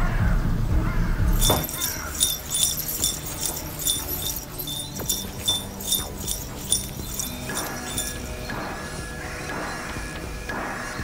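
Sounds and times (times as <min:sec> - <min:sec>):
small metal pieces jingling: 0:01.3 - 0:08.4.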